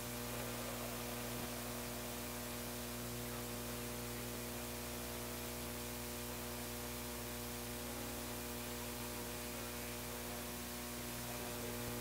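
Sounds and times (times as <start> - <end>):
constant hiss: 0.0 - 12.0
electrical mains hum: 0.0 - 12.0.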